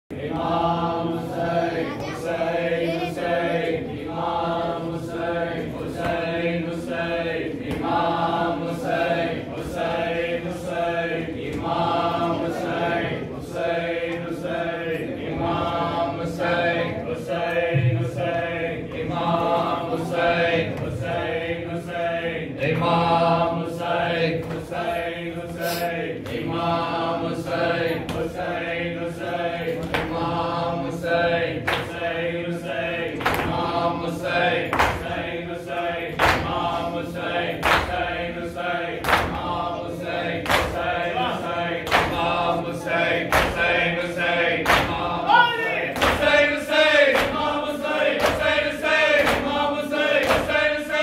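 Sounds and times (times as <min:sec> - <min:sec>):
men chanting together: 0:00.1 - 0:51.0
sharp slaps at steady beat: 0:00.2 - 0:01.5, 0:03.3 - 0:14.7, 0:17.3 - 0:51.0.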